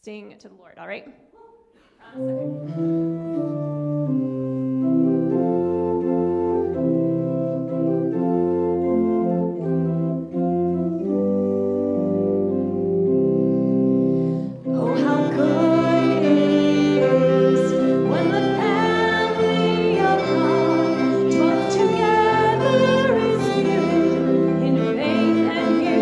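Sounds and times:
grand piano chords: 0:02.0 - 0:26.0
violin melody: 0:02.0 - 0:26.0
church organ chords: 0:02.2 - 0:26.0.

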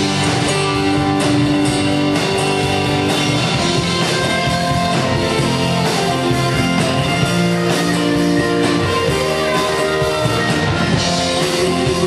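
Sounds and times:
guitars: 0:00.0 - 0:12.0
live rock band playing: 0:00.0 - 0:12.0.

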